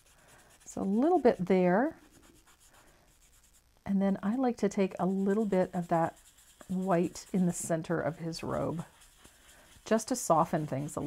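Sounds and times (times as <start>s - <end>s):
paintbrush scratching: 0.0s - 3.6s, 4.8s - 11.0s
person speaking: 0.7s - 2.1s, 6.7s - 8.8s, 9.8s - 11.0s.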